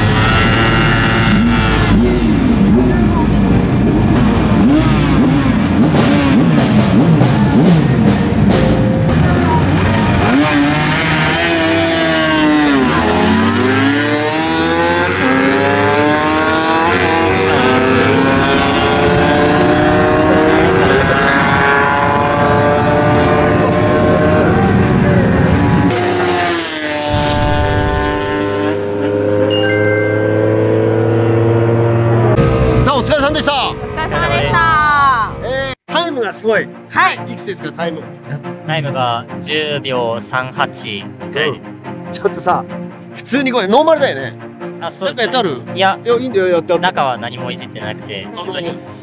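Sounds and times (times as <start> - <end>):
motorcycle engines revving high: 0.0 - 35.6.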